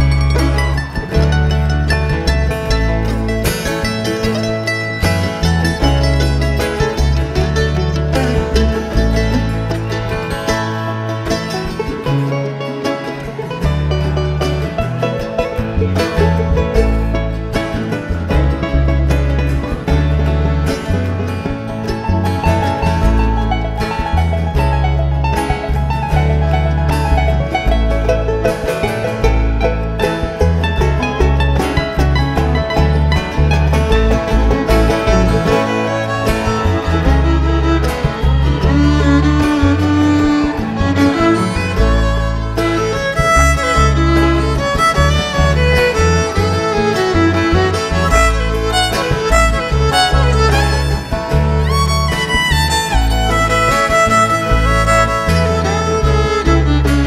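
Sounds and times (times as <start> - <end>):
banjo picking: 0.0 - 57.0
guitar picking: 0.0 - 57.0
upright bass walking line: 0.0 - 57.0
fiddle sliding note: 19.1 - 57.0.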